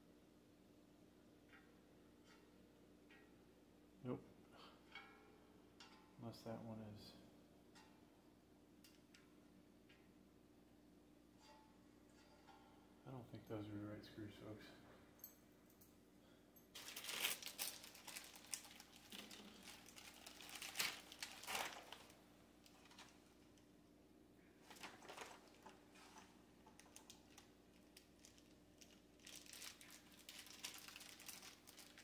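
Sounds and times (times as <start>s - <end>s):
packaging crinkling and rustling: 16.7s - 23.3s, 24.6s - 32.0s.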